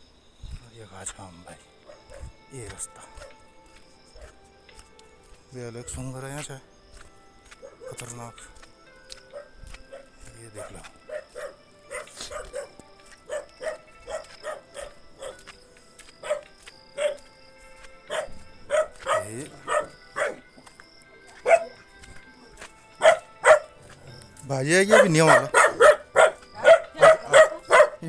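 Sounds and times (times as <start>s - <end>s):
dog barking: 1.8s - 2.3s, 7.6s - 8.0s, 9.3s - 15.4s, 16.2s - 17.2s, 18.1s - 20.4s, 21.4s - 21.8s, 23.0s - 23.8s, 24.9s - 28.0s.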